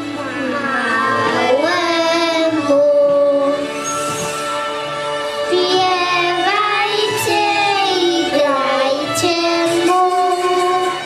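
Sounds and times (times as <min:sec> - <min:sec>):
musical accompaniment: 0:00.0 - 0:11.0
girl singing into a microphone: 0:01.2 - 0:03.8, 0:05.5 - 0:11.0.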